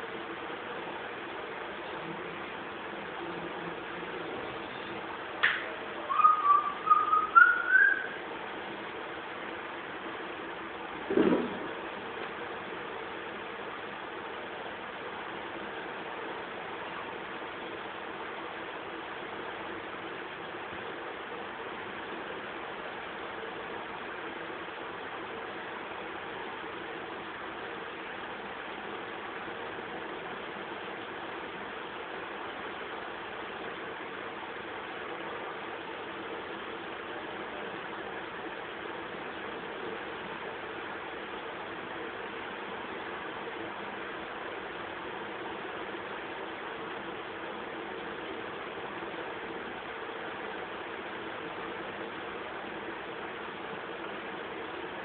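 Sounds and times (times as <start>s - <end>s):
warbling rising whistle tone: 6.0s - 8.2s.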